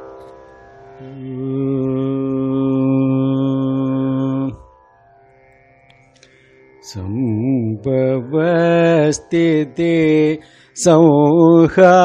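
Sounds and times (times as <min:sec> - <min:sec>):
man chanting a deep note: 0:01.0 - 0:04.6, 0:06.8 - 0:12.0.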